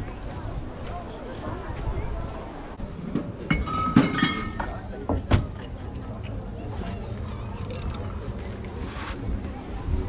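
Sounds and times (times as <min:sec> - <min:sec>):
bottles knocking: 0:03.5 - 0:04.8.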